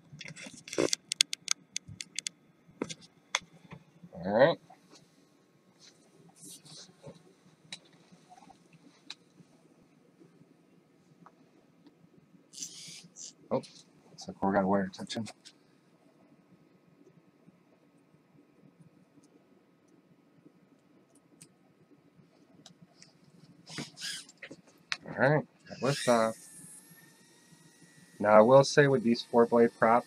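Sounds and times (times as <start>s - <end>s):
faint low hum: 0.0s - 30.0s.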